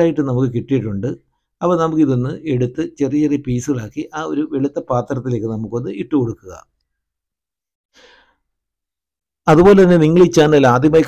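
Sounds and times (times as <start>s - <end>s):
faint breath: 7.9s - 8.6s.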